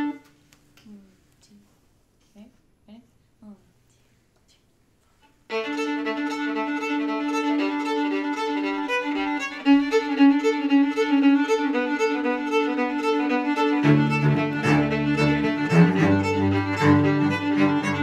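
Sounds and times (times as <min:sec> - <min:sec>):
fiddle playing folk tune: 0:00.0 - 0:00.2, 0:05.5 - 0:18.0.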